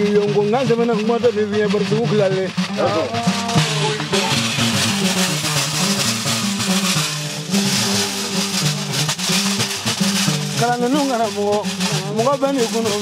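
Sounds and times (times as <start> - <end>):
steady percussion beat: 0.0 - 13.0
harp plucking low figure: 1.6 - 10.8.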